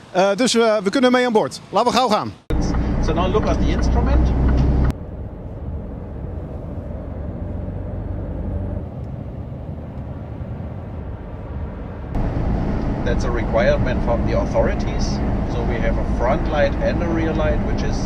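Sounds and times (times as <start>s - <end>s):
truck engine and road rumble: 0.0s - 18.0s.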